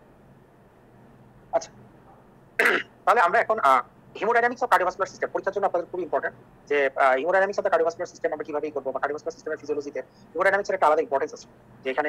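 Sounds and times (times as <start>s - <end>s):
faint steady hiss: 0.0s - 12.0s
person clearing throat: 2.6s - 3.0s.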